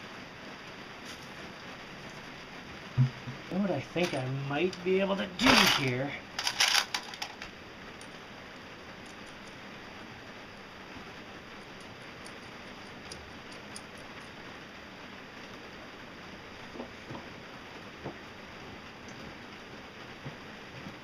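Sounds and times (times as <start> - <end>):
faint steady hiss: 0.0 - 21.0.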